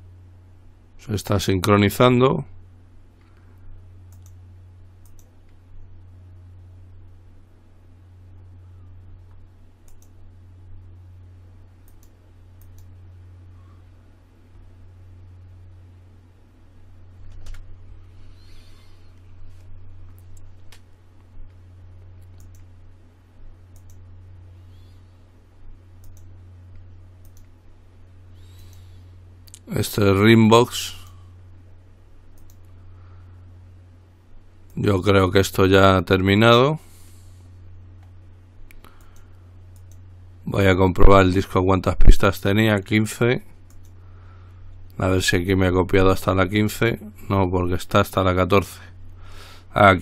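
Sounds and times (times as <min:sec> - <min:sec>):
low electrical hum: 0:00.0 - 0:50.0
computer mouse clicks: 0:04.1 - 0:04.4, 0:05.0 - 0:05.6, 0:09.3 - 0:10.2, 0:11.8 - 0:12.9, 0:22.2 - 0:22.7, 0:23.7 - 0:24.0, 0:26.0 - 0:27.5, 0:28.4 - 0:29.6, 0:32.3 - 0:32.7, 0:38.0 - 0:40.0, 0:43.7 - 0:44.0.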